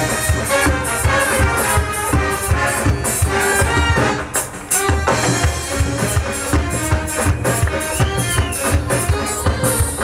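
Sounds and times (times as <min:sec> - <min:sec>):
military band playing: 0:00.0 - 0:10.0.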